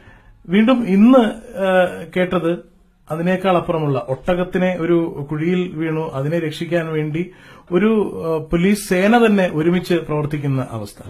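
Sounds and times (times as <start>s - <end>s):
man lecturing over microphone: 0.5s - 11.0s.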